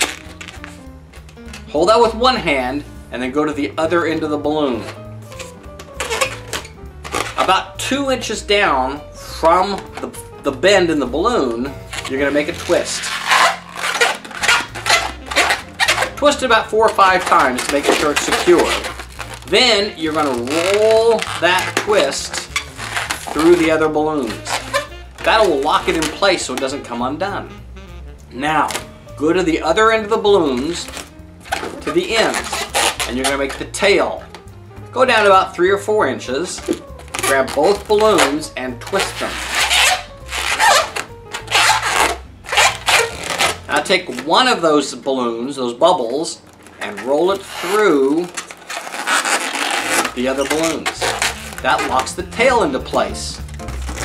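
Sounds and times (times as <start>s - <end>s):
balloon rubbery squeaks: 0.0s - 45.0s, 45.8s - 54.0s.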